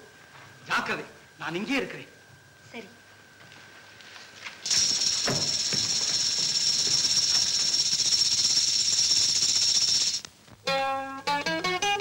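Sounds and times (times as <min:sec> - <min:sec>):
high-pitched buzzing hiss: 0:04.6 - 0:11.0.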